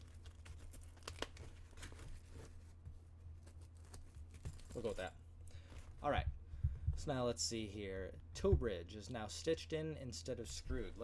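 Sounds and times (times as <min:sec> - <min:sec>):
steady low hum: 0:01.8 - 0:11.0.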